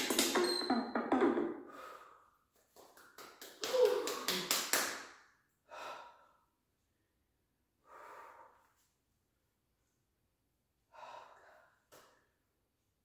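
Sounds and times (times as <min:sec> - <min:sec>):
woman breathing hard: 0:01.6 - 0:02.5, 0:05.6 - 0:06.6, 0:07.8 - 0:08.9, 0:10.8 - 0:12.2.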